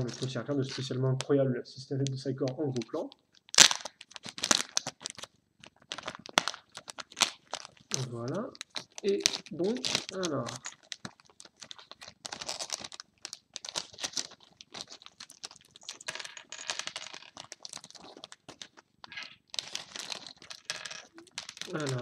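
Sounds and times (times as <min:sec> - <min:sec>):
plastic bag crinkling: 0:03.0 - 0:22.0
plastic pieces clicking on tabletop: 0:16.1 - 0:17.3, 0:20.6 - 0:21.7.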